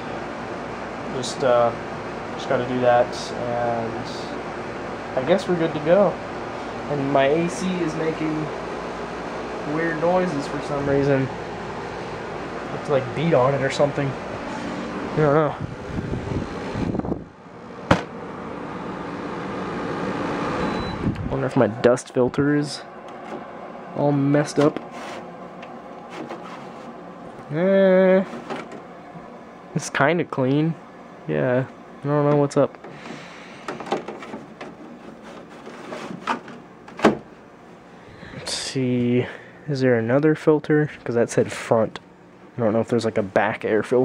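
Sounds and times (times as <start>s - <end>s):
air conditioner humming whir: 0.0s - 44.0s.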